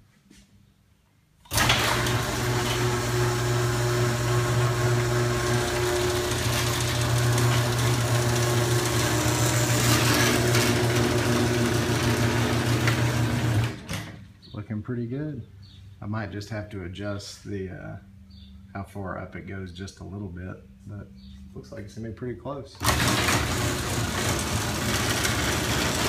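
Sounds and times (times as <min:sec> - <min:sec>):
garage door opener motor hum: 0:01.4 - 0:14.3, 0:22.8 - 0:26.0.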